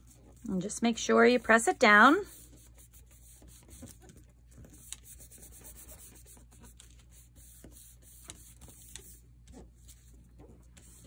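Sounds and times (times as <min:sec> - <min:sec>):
hands rubbing paper: 0:02.1 - 0:11.0.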